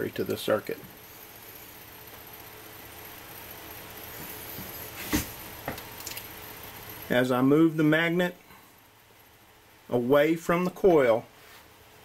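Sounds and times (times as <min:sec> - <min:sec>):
small electric motor spinning: 0:00.0 - 0:08.4.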